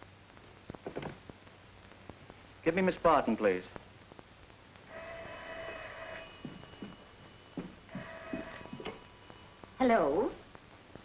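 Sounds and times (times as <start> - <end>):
telephone bell ringing: 4.9 - 9.6.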